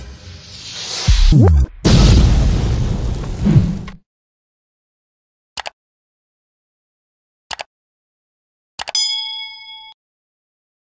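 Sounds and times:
bright metallic chime: 9.0 - 10.0.

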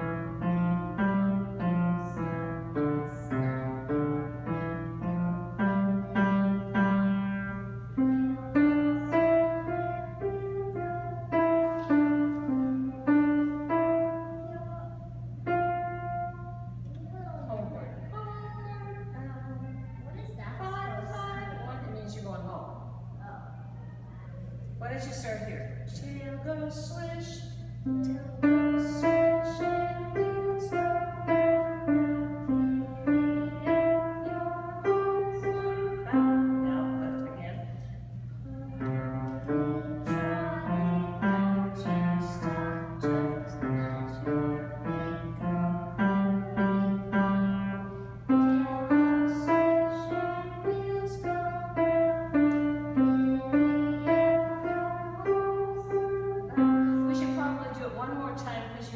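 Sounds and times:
piano melody: 0.0 - 20.0, 27.6 - 58.4
steady low hum: 0.0 - 58.9.

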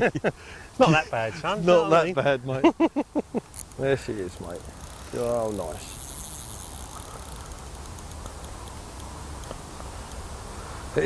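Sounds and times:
faint high ticks: 3.4 - 10.3.

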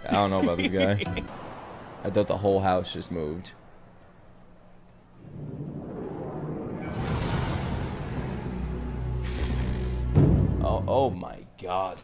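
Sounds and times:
rushing swell of noise: 5.2 - 9.3.

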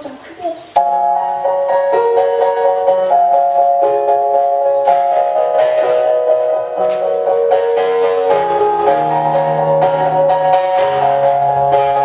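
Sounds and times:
instrumental backing music: 0.8 - 12.0.

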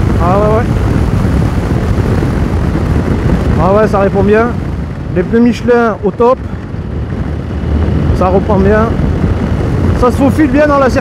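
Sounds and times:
motorcycle engine running: 0.0 - 11.0
wind buffeting microphone: 0.0 - 11.0.

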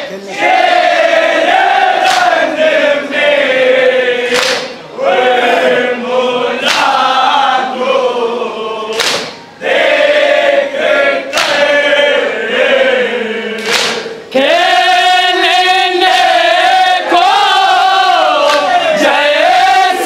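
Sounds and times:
men singing in unison: 0.4 - 20.0
chest beating slaps: 4.3 - 4.8, 8.9 - 9.4, 13.6 - 14.1.

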